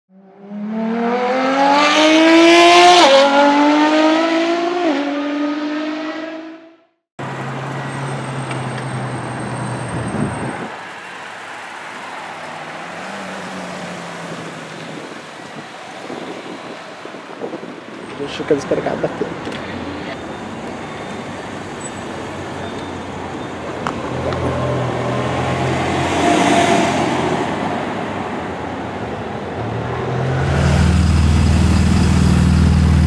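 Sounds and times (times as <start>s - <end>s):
street traffic noise: 0.1s - 33.0s
car engine accelerating through gears: 0.2s - 6.8s.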